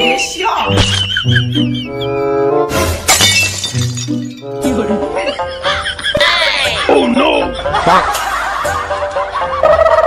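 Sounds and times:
background music: 0.0s - 10.0s
glass shattering: 2.8s - 4.7s.

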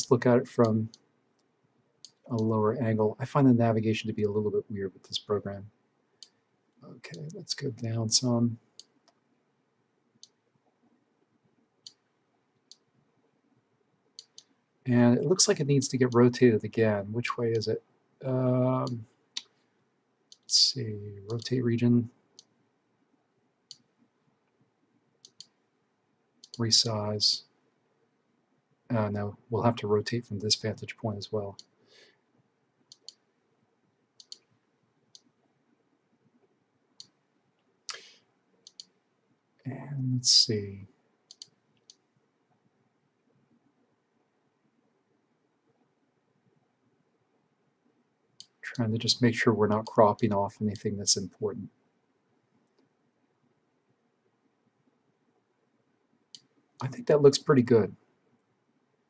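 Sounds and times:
faint computer mouse clicks: 14.2s - 14.5s, 25.2s - 25.6s, 32.9s - 33.2s, 34.2s - 34.5s, 37.9s - 39.0s, 41.3s - 42.0s
computer mouse buttons clicking: 38.7s - 38.9s.

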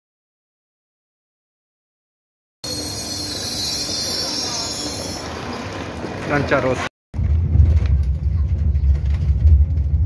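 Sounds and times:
train wheels squealing: 2.7s - 5.9s
train rumble: 2.7s - 10.0s.

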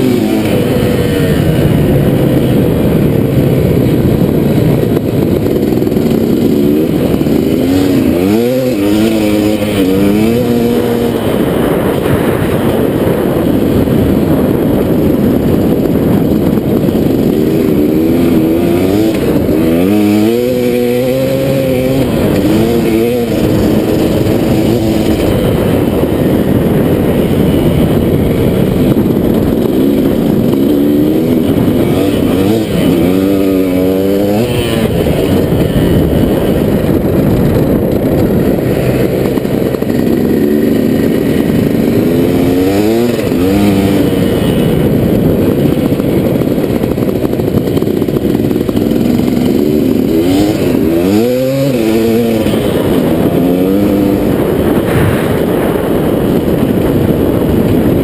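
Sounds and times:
two-stroke motorcycle engine revving: 0.0s - 58.0s.

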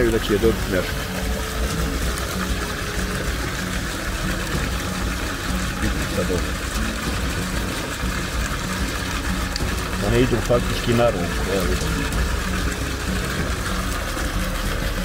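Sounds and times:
low steady hum: 0.0s - 15.0s
water rushing into a pond: 0.0s - 15.0s.

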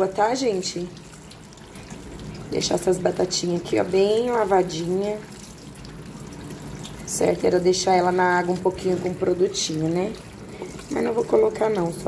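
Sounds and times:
kitchen tap running: 0.0s - 12.0s.

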